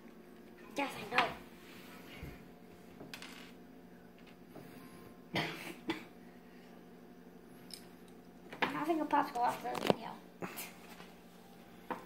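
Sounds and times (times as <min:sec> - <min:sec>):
person coughing: 0:05.3 - 0:06.1.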